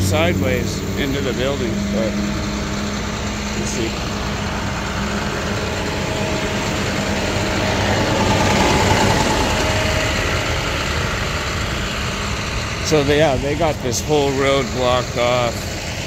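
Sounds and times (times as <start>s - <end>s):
truck engine idling: 0.0s - 16.0s.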